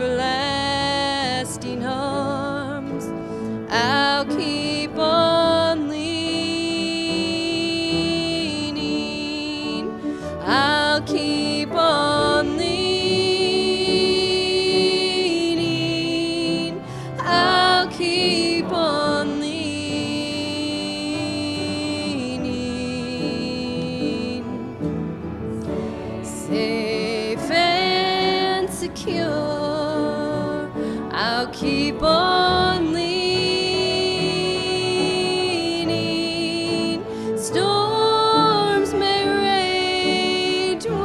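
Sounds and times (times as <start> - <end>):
acoustic guitar: 0.0 - 41.0
fiddle: 0.0 - 41.0
mandolin: 0.0 - 41.0
piano: 0.0 - 41.0.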